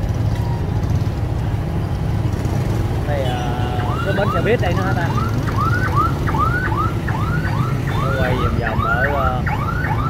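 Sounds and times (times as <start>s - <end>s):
motorbikes and bus passing: 0.0s - 10.0s.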